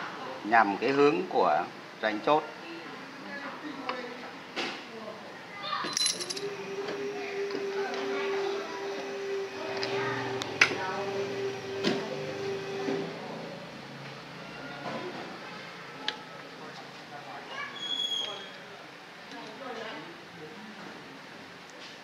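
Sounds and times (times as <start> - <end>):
metal parts clinking: 5.9 - 6.4.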